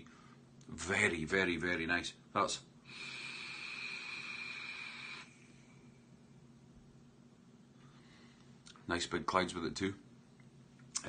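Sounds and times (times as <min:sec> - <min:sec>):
vape hiss and coil sizzle: 0:02.9 - 0:05.4.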